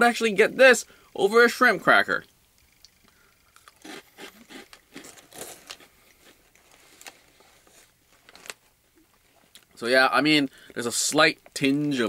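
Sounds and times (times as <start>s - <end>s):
cracker stick crunching: 3.5s - 9.8s.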